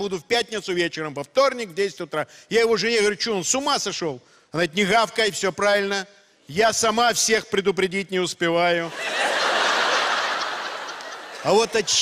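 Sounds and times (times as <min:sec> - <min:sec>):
audience laughing: 0:08.9 - 0:12.0.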